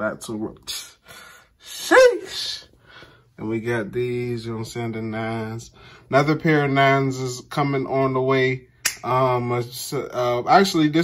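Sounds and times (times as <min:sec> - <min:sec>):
breath noise: 0:01.0 - 0:01.7, 0:02.7 - 0:03.4, 0:05.7 - 0:06.1.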